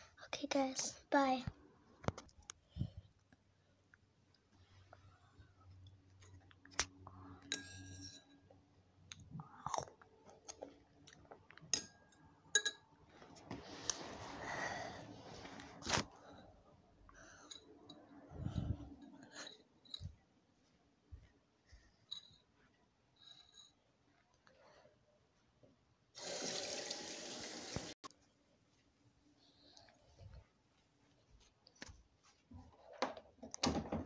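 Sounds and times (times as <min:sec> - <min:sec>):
sink tap turned on: 0:26.2 - 0:27.9
water running into sink: 0:26.2 - 0:28.0.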